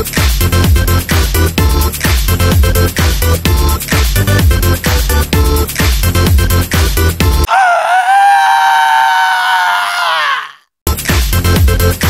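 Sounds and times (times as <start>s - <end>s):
long held scream: 7.5s - 10.7s.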